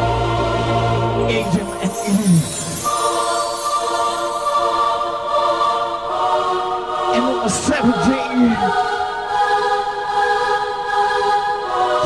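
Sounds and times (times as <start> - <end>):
sustained choir-like synth chord: 0.0 - 12.0.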